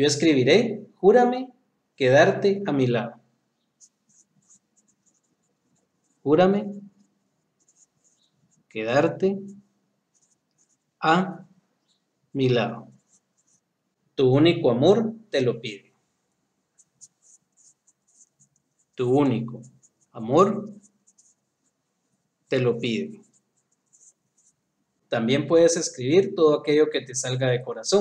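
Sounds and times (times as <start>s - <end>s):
marker scratching on paper: 3.7s - 11.0s, 12.8s - 13.7s, 16.7s - 25.1s.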